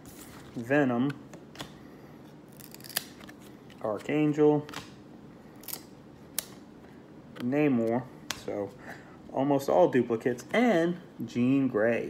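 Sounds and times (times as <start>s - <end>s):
cards sliding: 0.0s - 5.0s.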